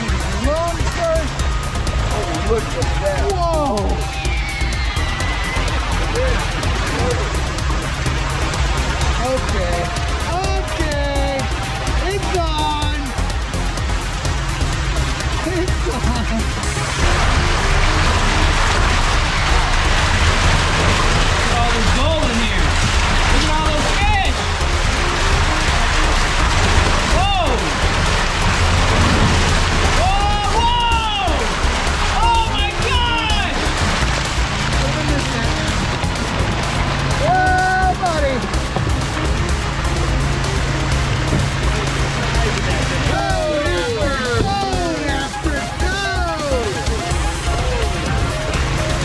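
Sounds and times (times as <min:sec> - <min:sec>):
water rushing and splashing: 0:00.0 - 0:49.0.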